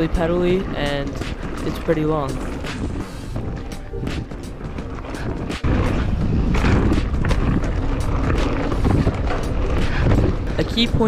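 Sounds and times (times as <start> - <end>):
bike tyres on dirt and gravel: 0.0 - 11.0
clicks and rattles: 0.0 - 11.0.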